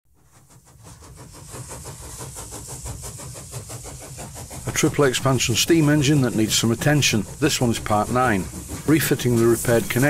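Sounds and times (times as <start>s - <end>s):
steam engine running: 0.2s - 10.0s.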